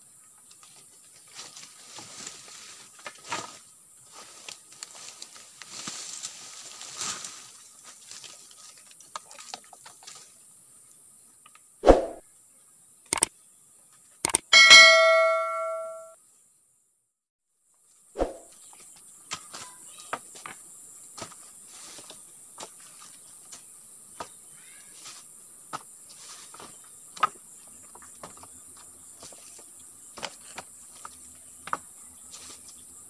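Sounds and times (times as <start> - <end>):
notification bell ding: 14.6 - 16.1
high insect chorus: 18.5 - 33.0.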